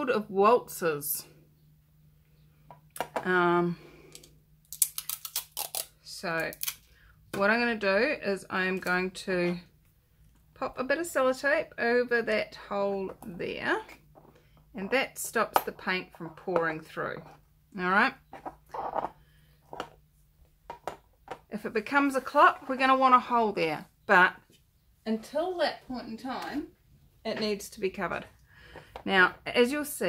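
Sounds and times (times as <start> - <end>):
faint low hum: 0.0 - 30.0.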